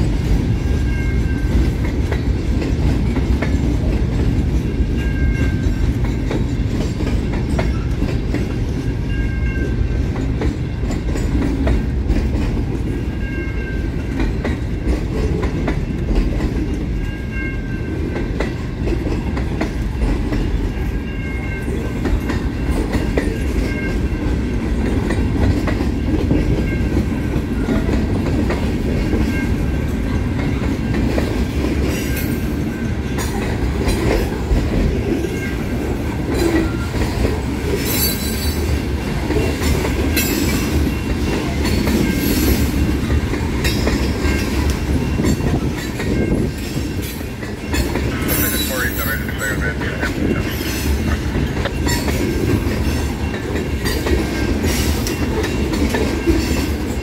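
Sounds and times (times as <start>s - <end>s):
clickety-clack over rail joints: 0.0s - 57.0s
train wheels rumbling on rails: 0.0s - 57.0s.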